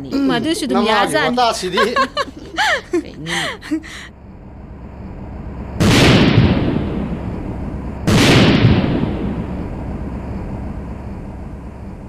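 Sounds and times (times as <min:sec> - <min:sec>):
explosion blasts with low rumble: 0:04.4 - 0:12.0.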